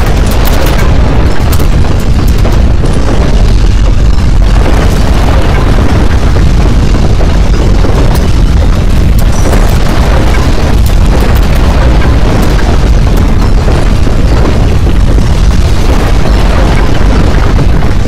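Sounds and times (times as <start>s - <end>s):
earthquake rumbling and rattling: 0.0s - 18.0s.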